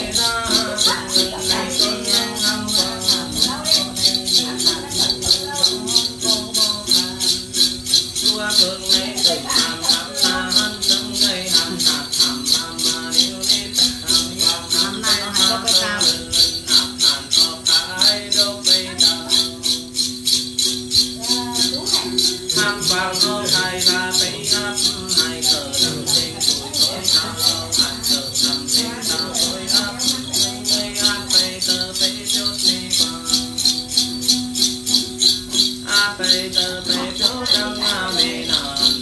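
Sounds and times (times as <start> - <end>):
metal jingles shaken: 0.0 - 39.0
person singing: 0.0 - 39.0
plucked lute: 0.0 - 39.0.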